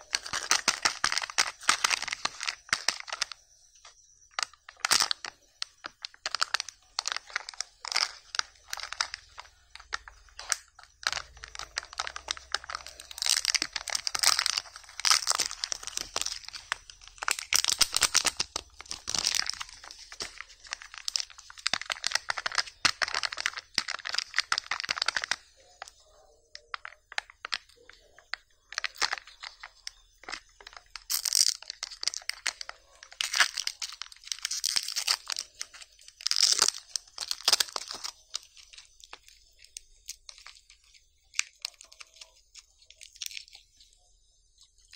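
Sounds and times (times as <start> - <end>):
foil wrapper crinkling: 0.0 - 44.9.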